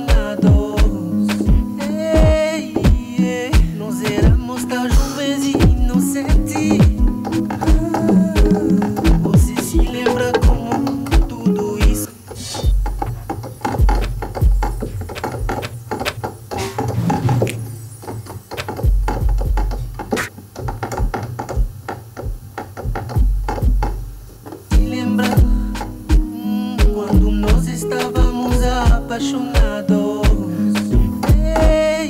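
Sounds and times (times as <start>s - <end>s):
drum machine beat: 0.0s - 16.3s, 17.2s - 32.0s
deep bass notes: 23.2s - 29.2s, 30.3s - 32.0s.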